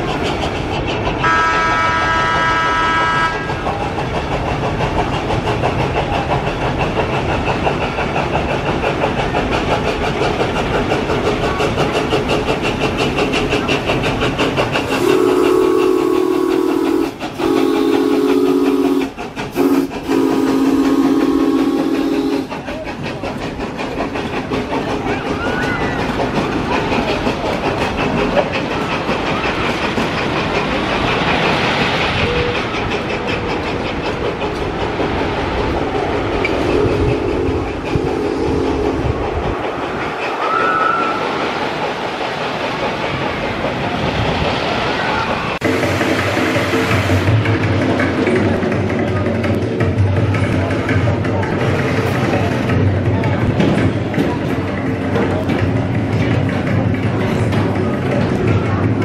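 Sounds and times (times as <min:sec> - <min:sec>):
train clattering on rails: 0:00.0 - 0:59.0
train whistle blasts: 0:01.2 - 0:03.5, 0:14.9 - 0:22.5.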